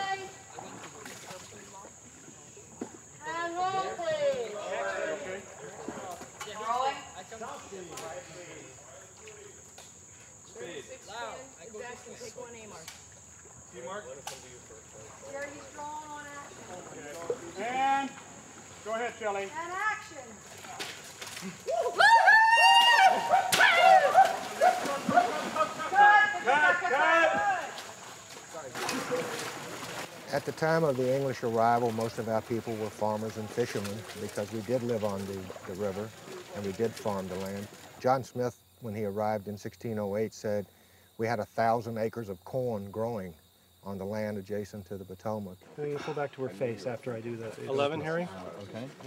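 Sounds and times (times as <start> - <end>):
water sloshing and splashing: 0.0 - 2.2, 12.8 - 21.7, 23.2 - 26.6, 27.3 - 38.2
men whooping and yelling: 21.5 - 28.0.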